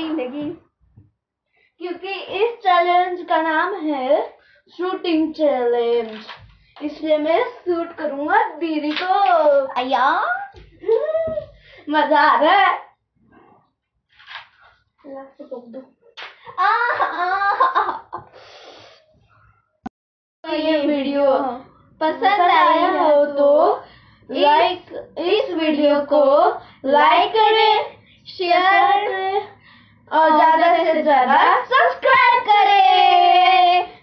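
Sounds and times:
child singing: 22.0s - 23.6s, 30.2s - 33.9s.

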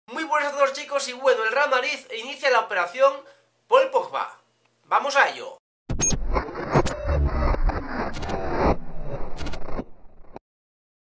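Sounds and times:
bass-heavy electronic rush: 5.9s - 10.4s.

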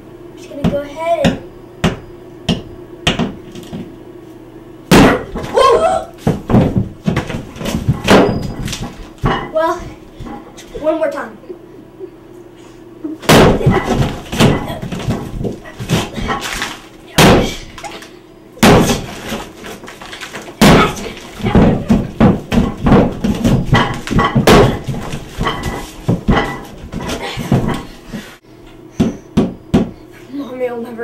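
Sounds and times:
hammer striking wall: 0.6s - 3.8s, 4.9s - 5.6s, 6.2s - 9.6s, 13.3s - 16.5s, 17.2s - 17.7s, 18.6s - 19.4s, 20.6s - 27.9s.

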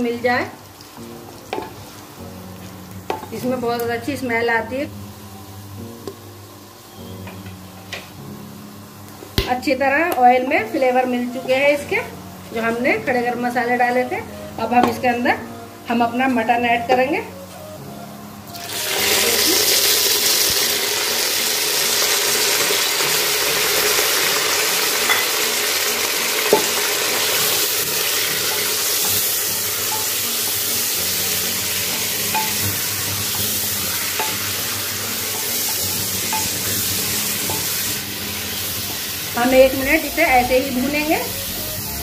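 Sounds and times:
meat sizzling in oil: 0.0s - 10.1s, 18.5s - 42.0s.

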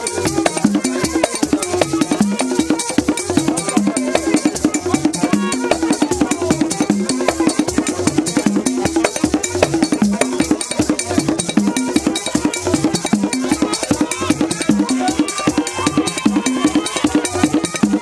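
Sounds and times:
fast hand drumming: 0.0s - 18.0s.

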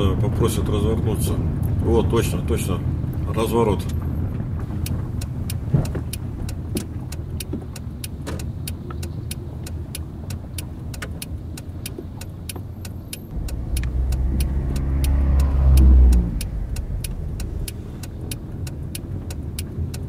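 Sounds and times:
car engine from inside: 0.0s - 20.0s
steady fast ticking: 4.7s - 20.0s
car driving past: 12.8s - 19.8s.

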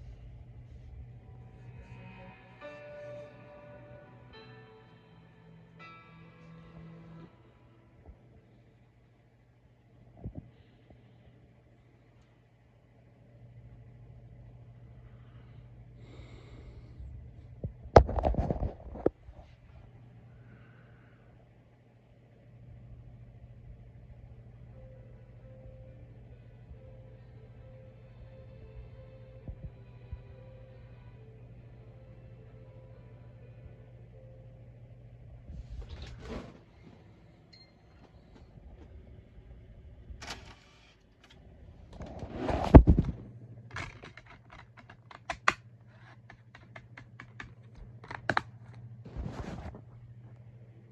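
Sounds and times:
faint musical tone: 0.0s - 10.8s, 22.3s - 40.2s
faint low hum: 0.0s - 50.9s.

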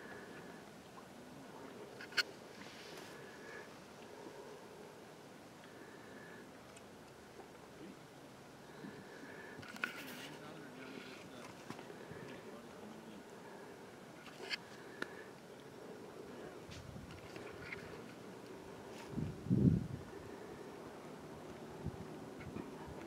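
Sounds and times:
faint steady hiss: 0.0s - 23.0s.

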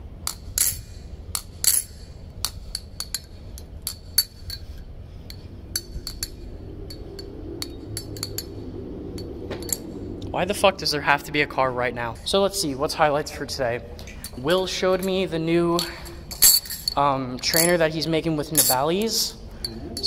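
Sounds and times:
low rumble: 0.8s - 20.0s.

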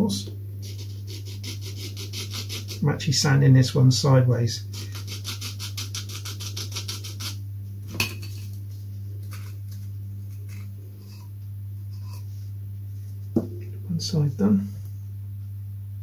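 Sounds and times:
low steady hum: 0.0s - 16.0s
sanding stick scraping wood: 0.6s - 2.9s, 4.7s - 7.4s.

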